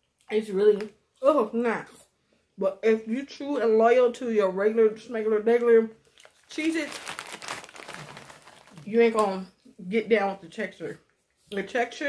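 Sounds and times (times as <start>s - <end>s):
plastic snack bag crinkling: 6.0s - 9.4s.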